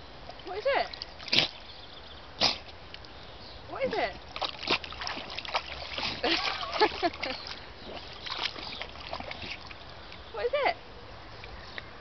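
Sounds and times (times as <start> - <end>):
dog snorting through nose: 1.3 - 1.6, 2.4 - 2.7.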